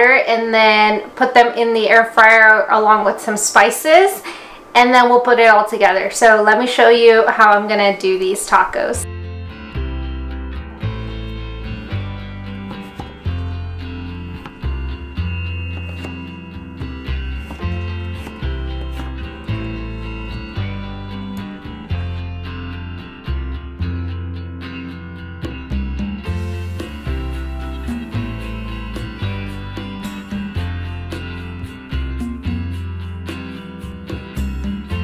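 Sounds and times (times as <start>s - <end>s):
guitar music over bass line: 9.0s - 35.0s.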